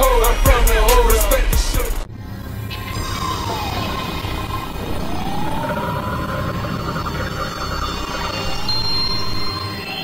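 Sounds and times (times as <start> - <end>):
whirring tone: 2.1 - 10.0.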